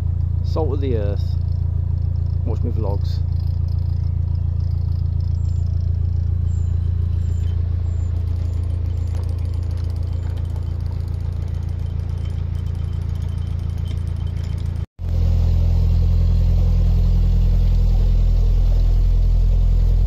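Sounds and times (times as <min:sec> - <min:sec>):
boat engine throbbing: 0:00.0 - 0:20.0.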